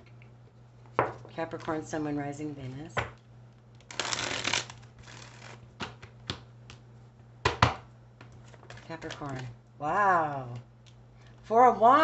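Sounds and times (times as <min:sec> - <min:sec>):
cards riffling: 0:03.8 - 0:06.1.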